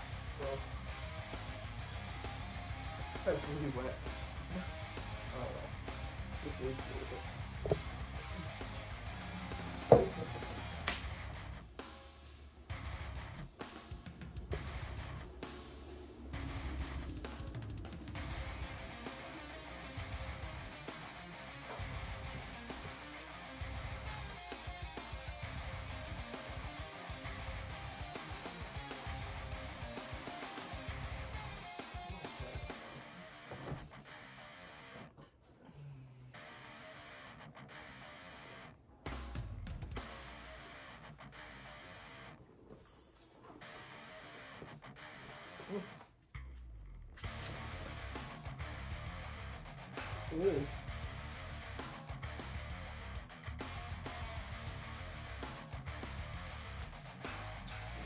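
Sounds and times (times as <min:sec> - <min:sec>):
music with drums and guitar: 0:00.0 - 0:35.0, 0:36.4 - 0:46.6, 0:47.2 - 0:58.0.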